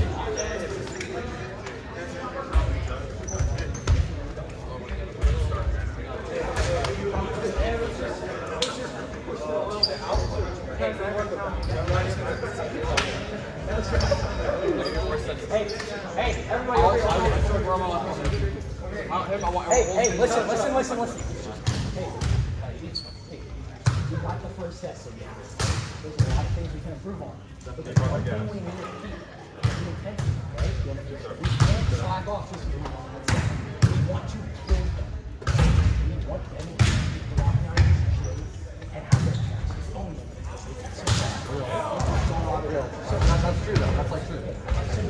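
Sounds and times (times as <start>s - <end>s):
murmur of voices: 0.0s - 45.0s.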